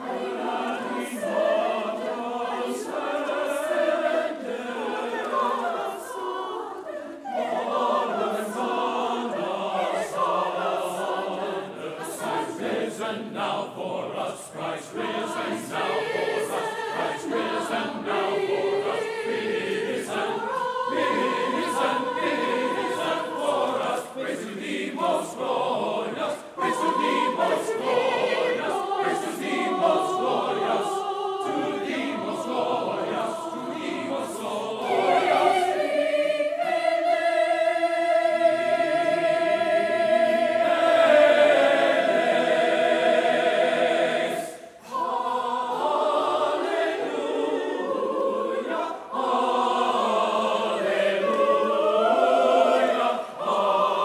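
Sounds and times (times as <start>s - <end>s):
choir singing: 0.0s - 54.0s.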